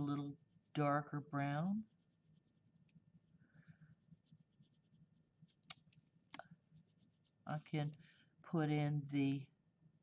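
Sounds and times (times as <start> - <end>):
crayon scratching on paper: 0.0 - 5.7, 6.6 - 8.0.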